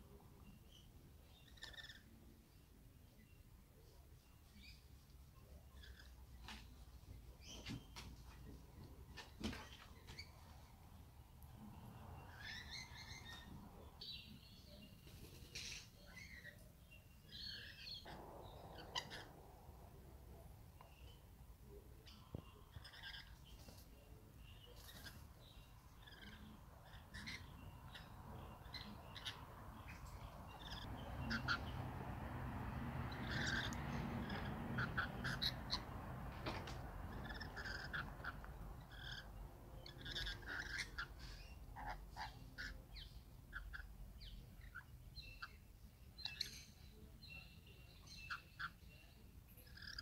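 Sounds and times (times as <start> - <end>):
birds chirping and squawking: 0.0 - 2.3, 4.5 - 50.0
low rushing noise: 18.0 - 22.5.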